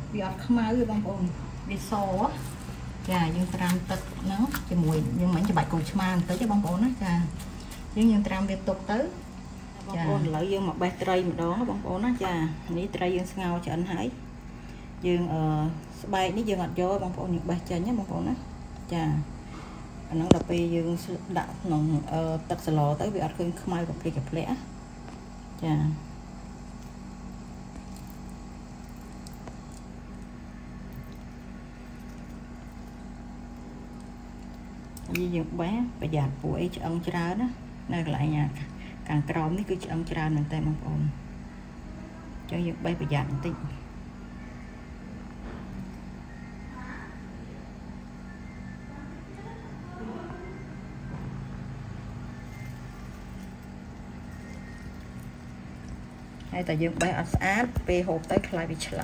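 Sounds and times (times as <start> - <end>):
electrical appliance humming: 0.0 - 59.0.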